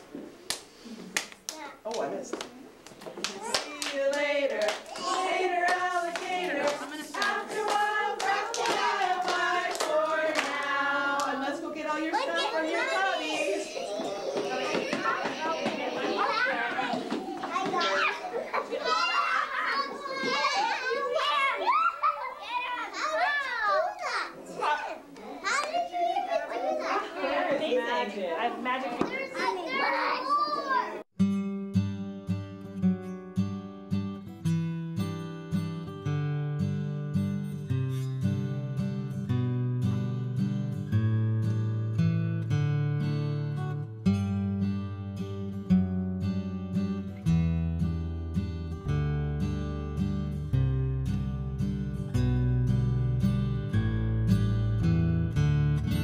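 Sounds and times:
children clapping hands: 0.5s - 11.5s
children's voices: 3.2s - 27.8s, 28.8s - 31.1s.

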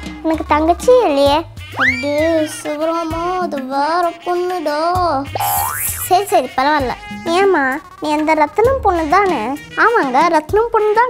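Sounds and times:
background music: 0.0s - 11.0s
person speaking: 1.8s - 3.0s, 5.2s - 8.3s.

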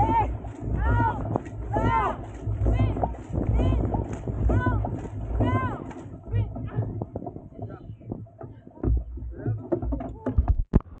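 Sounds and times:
paddle strokes: 0.0s - 11.0s
wooden paddles knocking on boat: 0.0s - 11.0s.

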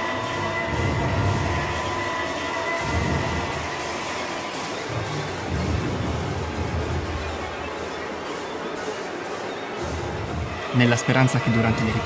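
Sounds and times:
noisy drone: 0.0s - 12.0s.

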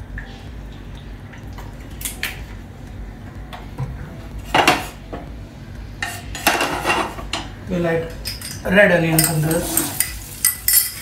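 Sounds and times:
utensils clinking against pan: 6.0s - 7.5s, 8.2s - 11.0s.

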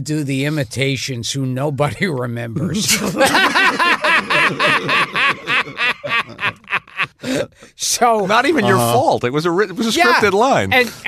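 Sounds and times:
men laughing: 2.9s - 7.5s.

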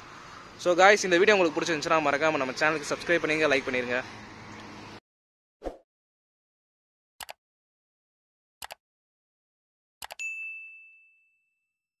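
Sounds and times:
bright bell ding: 10.2s - 11.8s.

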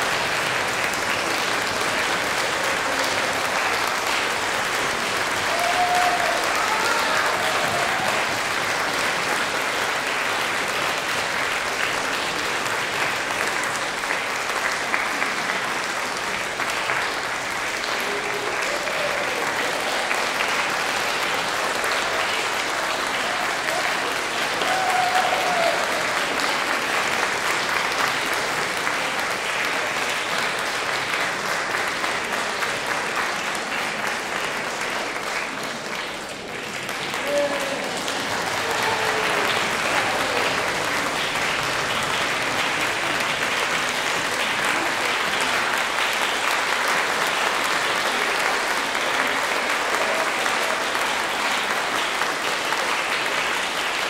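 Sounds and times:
audience applauding: 0.0s - 54.0s.

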